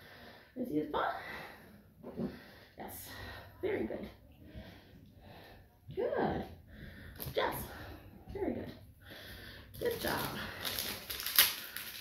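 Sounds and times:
plastic wrapper crinkling: 9.8s - 12.0s.

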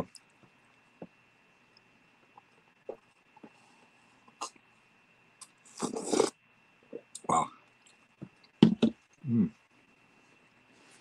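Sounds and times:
hissing slurp through biscuit: 5.7s - 6.4s.

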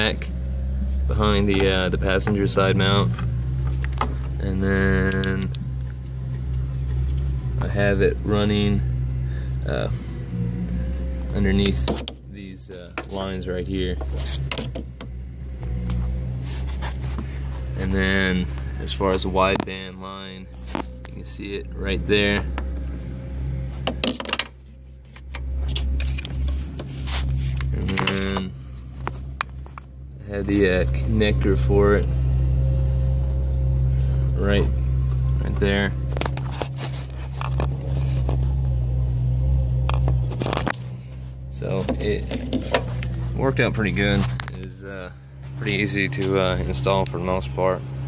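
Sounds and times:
car engine idling: 0.0s - 48.0s
low hum: 0.0s - 48.0s
scrapes and clicks: 25.0s - 28.4s, 36.0s - 39.2s.

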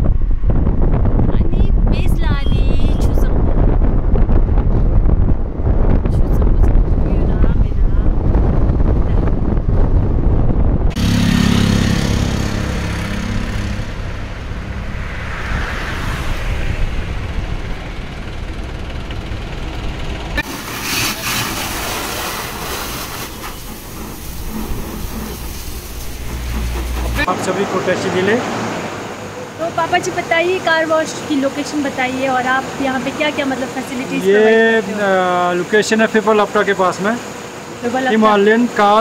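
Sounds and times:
road and wind rumble: 0.0s - 39.0s
vehicle engine and traffic hum: 0.0s - 39.0s
high-pressure water jet spraying: 20.4s - 28.3s.

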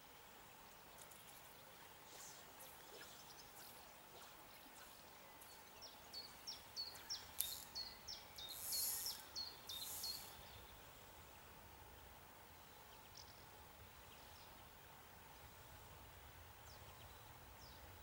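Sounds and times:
faint background hiss: 0.0s - 18.0s
songbird singing high notes: 2.0s - 10.6s
brief hissy bursts: 8.5s - 10.3s.

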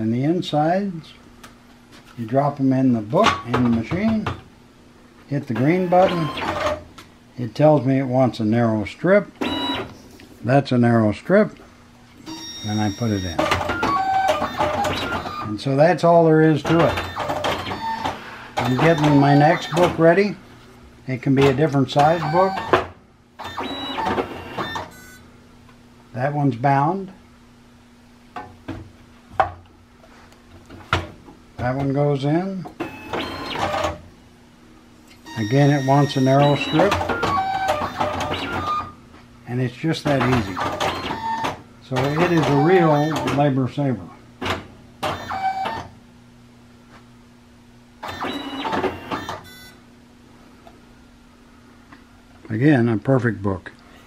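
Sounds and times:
faint steady hum: 0.0s - 54.0s
binding machine motor whine: 5.5s - 6.8s, 12.3s - 15.6s, 16.6s - 20.3s, 21.9s - 22.8s, 23.4s - 25.2s, 32.8s - 34.0s, 35.3s - 38.9s, 40.1s - 43.5s, 48.0s - 49.8s
short electronic tone: 5.6s - 6.6s, 23.5s - 25.2s, 48.1s - 49.8s.

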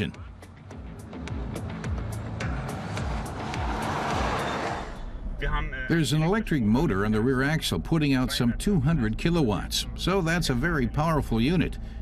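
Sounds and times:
background music with steady beat: 0.0s - 12.0s
car passing by: 1.0s - 5.5s.

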